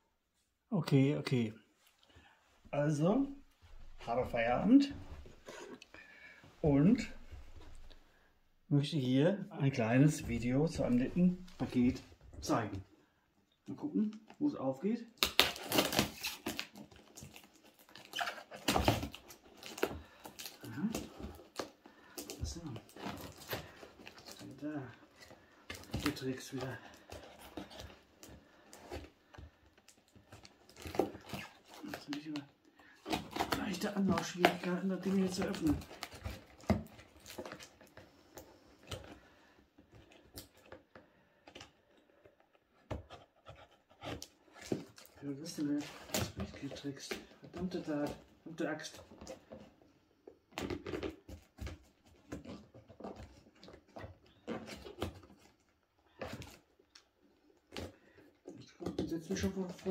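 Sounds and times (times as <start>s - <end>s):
packing tape tearing: 15.2s - 24.6s
tape crinkling: 15.2s - 39.2s.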